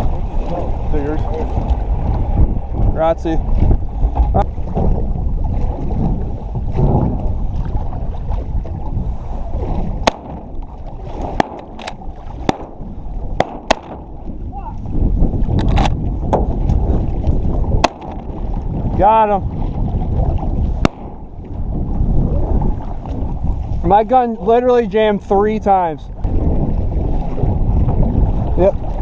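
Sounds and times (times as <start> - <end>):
water lapping against hull: 0.0 - 29.0
wind rumble on microphone: 0.0 - 29.0
shotgun cracks: 10.1 - 10.4, 11.4 - 12.8, 13.4 - 14.0, 20.9 - 21.2.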